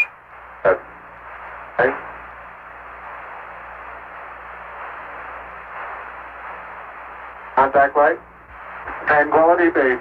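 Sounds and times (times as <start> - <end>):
radio static hiss: 0.0 - 10.0.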